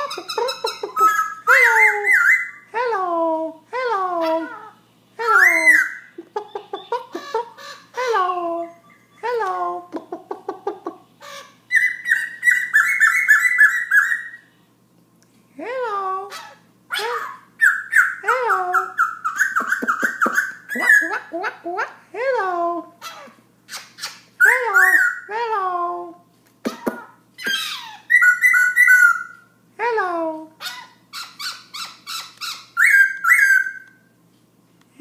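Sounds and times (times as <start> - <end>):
bird whistles and trills: 0.0 - 2.7, 11.3 - 14.5, 17.3 - 18.2, 27.4 - 29.4, 30.6 - 34.0.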